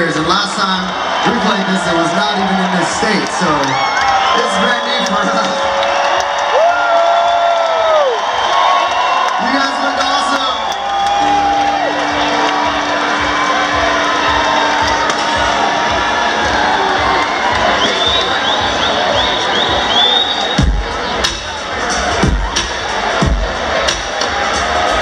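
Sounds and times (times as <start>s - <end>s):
crowd cheering and whooping: 0.0s - 25.0s.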